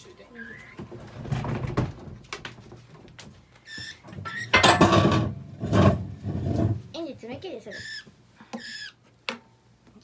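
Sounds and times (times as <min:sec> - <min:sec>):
budgerigar screeching: 0:07.7 - 0:09.0.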